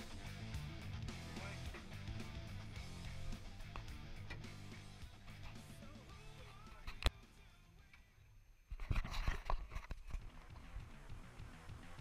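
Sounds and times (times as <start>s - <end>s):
music with a steady beat: 0.0s - 7.7s, 10.2s - 12.0s.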